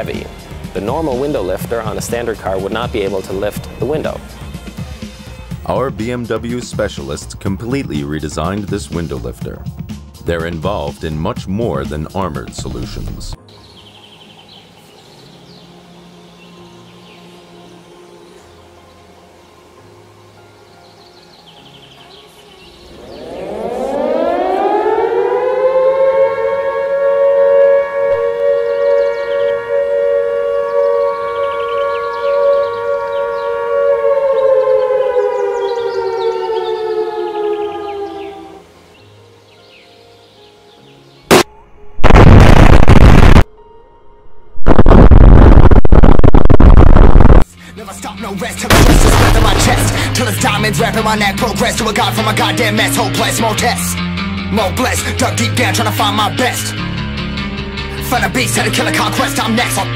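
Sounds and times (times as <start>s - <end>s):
warning siren wailing: 22.8s - 38.9s, 48.7s - 53.3s
loud explosion: 41.3s - 43.5s, 44.6s - 47.4s, 48.7s - 50.8s
sharp crack: 41.3s - 43.5s, 48.7s - 50.7s.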